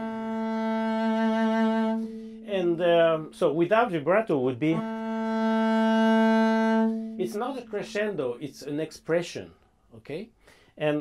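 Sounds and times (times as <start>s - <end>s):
bowed double bass long note: 0.0s - 9.3s.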